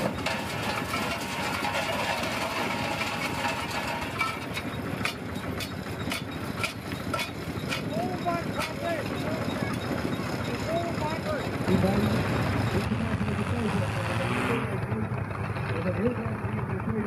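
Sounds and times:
stone crusher running: 0.0s - 13.8s.

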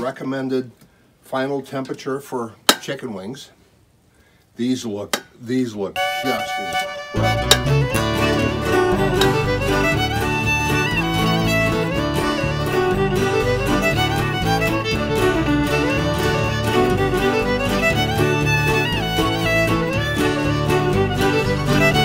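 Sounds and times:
fiddle reel with strings: 6.0s - 22.0s.

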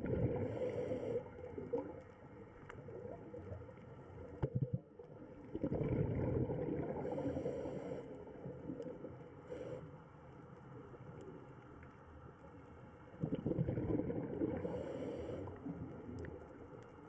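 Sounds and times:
underwater bubbles gurgling: 0.0s - 17.0s.

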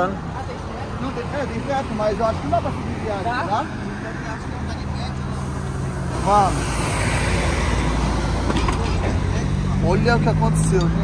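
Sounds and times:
highway traffic rushing: 0.0s - 11.0s.

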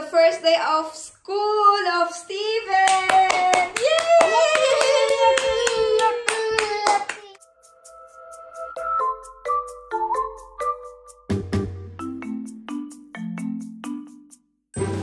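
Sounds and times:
hands clapping: 2.8s - 7.4s.

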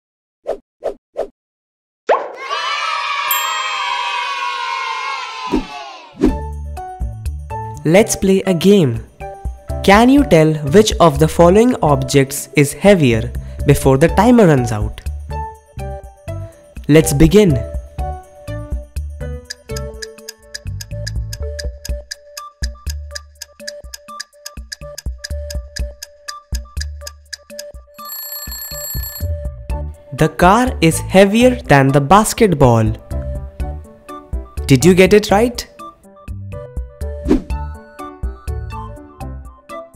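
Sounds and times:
children cheering and shouting: 2.3s - 6.2s
alarm clock ringing: 3.3s - 4.0s, 28.0s - 29.4s
cartoon music with steady beat: 6.2s - 28.0s, 28.7s - 32.0s, 32.7s - 39.9s.

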